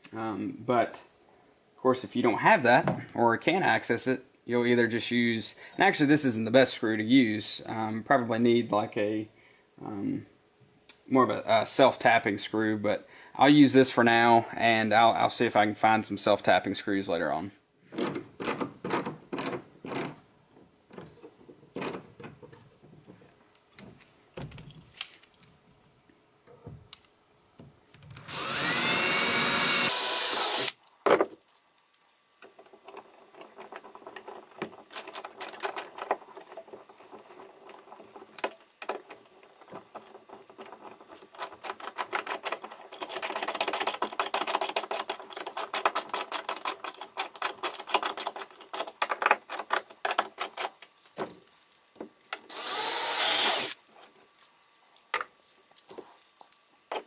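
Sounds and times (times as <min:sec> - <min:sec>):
cordless drill drilling into plastic: 0:28.1 - 0:30.8, 0:52.5 - 0:53.8.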